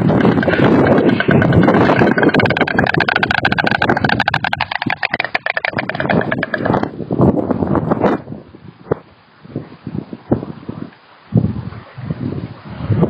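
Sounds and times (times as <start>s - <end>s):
stork clattering its bill: 0.0s - 7.0s.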